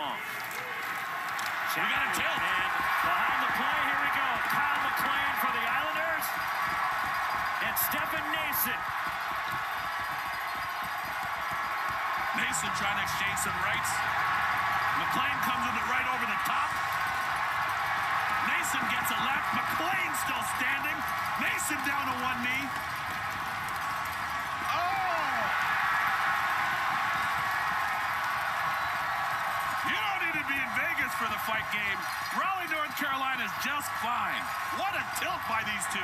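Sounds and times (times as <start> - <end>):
crowd cheering: 0.0 - 36.0.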